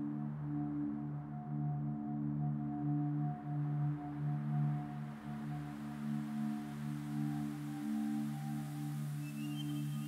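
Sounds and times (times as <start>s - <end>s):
meditation music drone: 0.0s - 10.0s.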